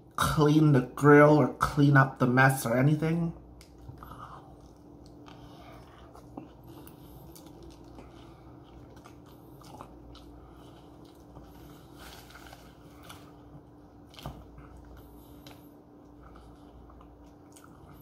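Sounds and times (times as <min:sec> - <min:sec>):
steady low hum: 0:00.0 - 0:18.0
chewing with small crunches: 0:03.5 - 0:18.0
biting into a tortilla wrap: 0:03.6 - 0:18.0.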